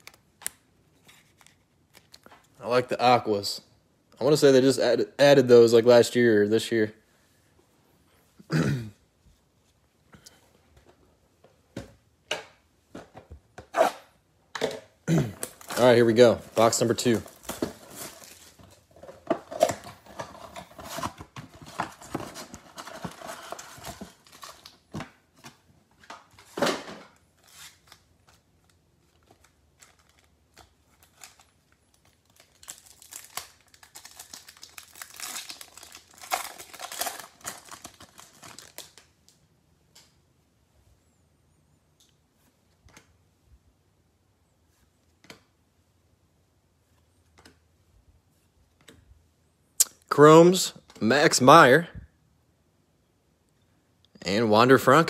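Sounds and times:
wrapper tearing and crinkling: 15.4s - 18.8s, 29.4s - 39.1s
shrink wrap crinkling and tearing: 15.4s - 25.0s, 27.2s - 39.4s.

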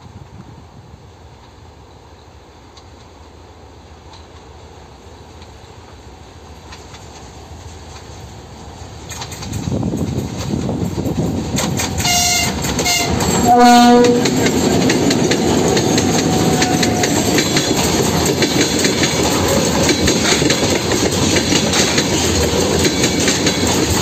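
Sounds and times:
train wheels on rails: 0.0s - 24.0s
diesel locomotive rumble: 6.0s - 24.0s.

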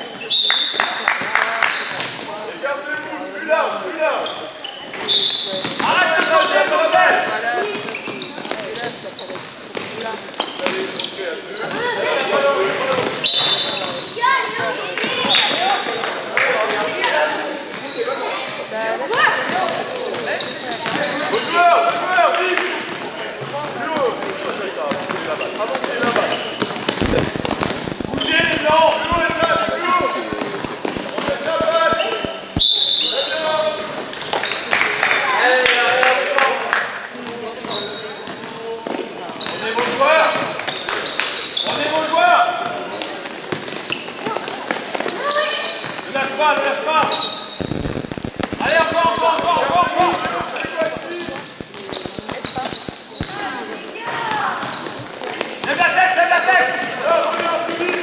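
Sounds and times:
shoe squeaks: 0.0s - 1.0s, 1.7s - 3.2s, 3.9s - 12.1s, 12.8s - 15.7s, 17.7s - 18.6s, 19.2s - 21.6s, 24.3s - 34.7s, 37.3s - 39.9s, 40.6s - 42.0s, 42.8s - 44.4s, 45.0s - 53.7s, 54.6s - 55.1s
players and spectators talking: 0.0s - 58.0s
basketball bouncing on court: 26.0s - 32.7s, 47.0s - 53.4s
basketball dribbled quickly: 26.0s - 32.7s, 47.0s - 53.4s.

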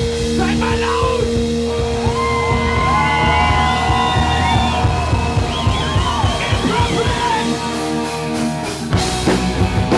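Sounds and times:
bass guitar: 0.0s - 9.9s
drums: 0.0s - 9.9s
rock band playing live: 0.0s - 9.9s.

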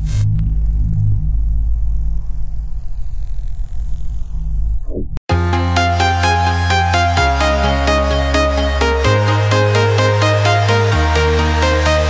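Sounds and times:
low rumbling drone: 0.0s - 5.2s.

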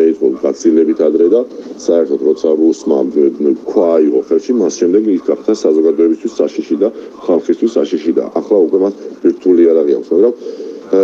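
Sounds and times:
man talking over video call: 0.0s - 11.0s.

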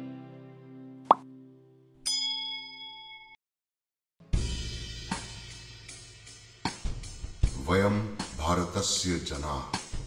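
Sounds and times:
bright bell chime: 2.1s - 3.4s.

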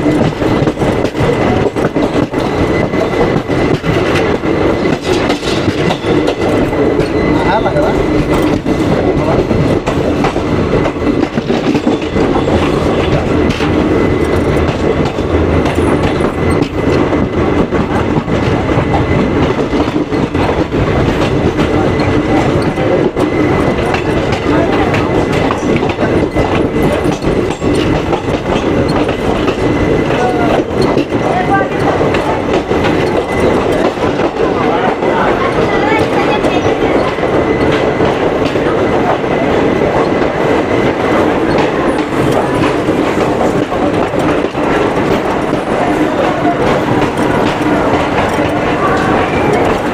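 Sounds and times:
train rumbling: 0.0s - 49.9s
wheels clattering over rail joints: 0.0s - 49.9s.

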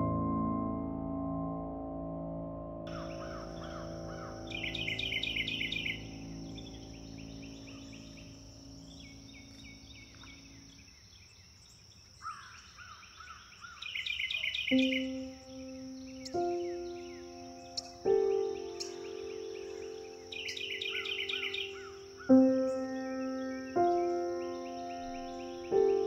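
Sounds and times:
soft piano notes: 0.0s - 10.8s, 14.7s - 26.0s
songbirds chirping and trilling: 2.9s - 26.0s.

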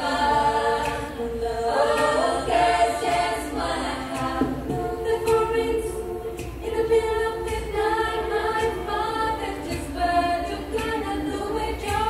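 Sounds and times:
women's choir singing a cappella: 0.0s - 12.0s.

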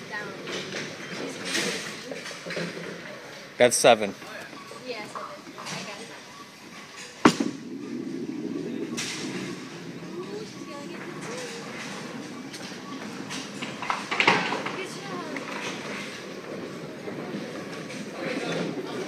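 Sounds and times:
bowling ball rolling rumble: 6.7s - 19.0s.

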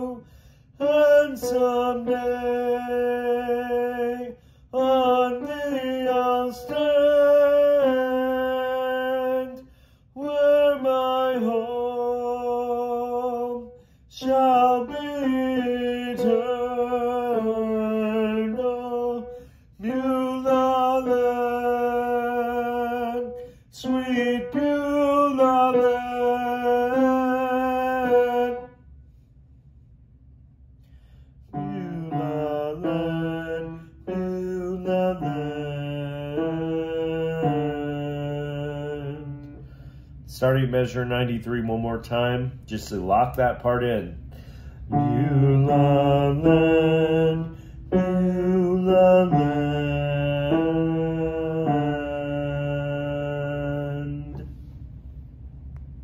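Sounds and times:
man singing hymn: 0.0s - 28.9s, 31.5s - 39.7s, 40.3s - 44.2s, 44.8s - 54.6s.

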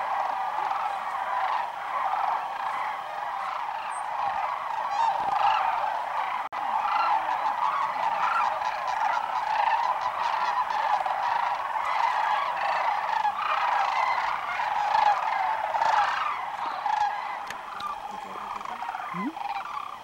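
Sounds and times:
flock of cranes calling: 0.0s - 20.0s.

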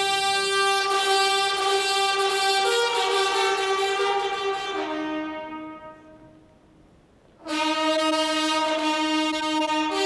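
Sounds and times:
brass ensemble holding chords: 0.0s - 6.7s, 7.4s - 10.0s.

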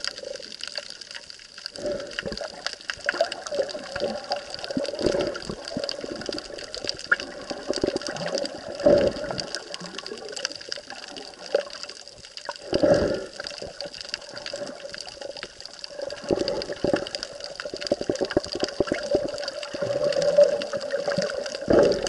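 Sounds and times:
muffled underwater water noise: 0.0s - 22.0s.

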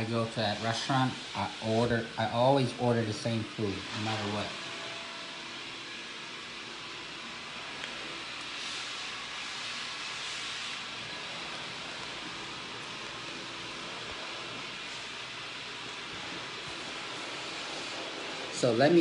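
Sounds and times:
steady background hiss: 0.0s - 19.0s.

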